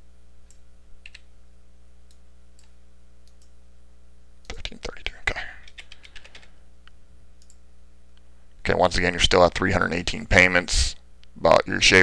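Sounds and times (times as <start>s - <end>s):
faint steady hum: 0.0s - 12.0s
typing on computer keyboard: 5.6s - 6.5s.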